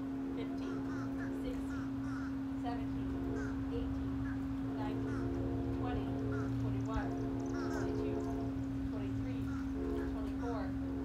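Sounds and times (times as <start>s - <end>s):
steady higher tones: 0.0s - 11.0s
steady low hum: 0.0s - 11.0s.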